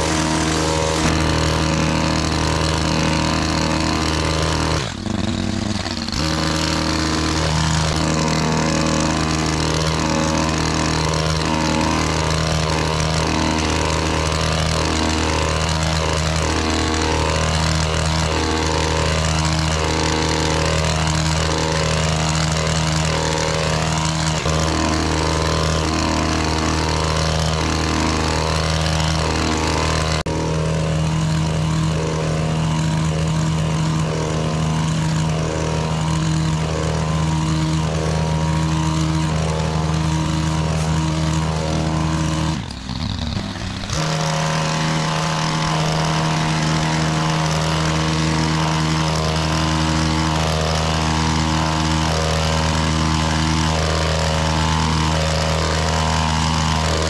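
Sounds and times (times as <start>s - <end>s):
hedge trimmer cutting hedge: 0.0s - 57.0s.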